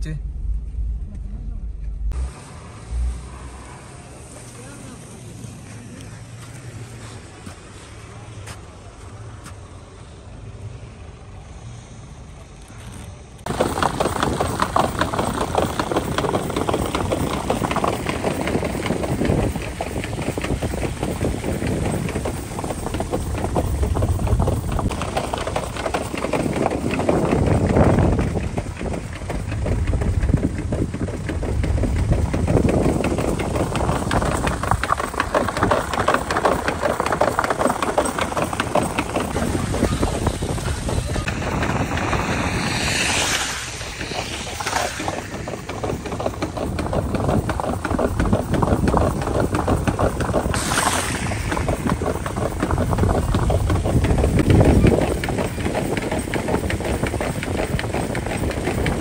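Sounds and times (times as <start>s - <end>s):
car driving with snow chains: 2.1s - 59.0s
wind on microphone: 13.4s - 59.0s.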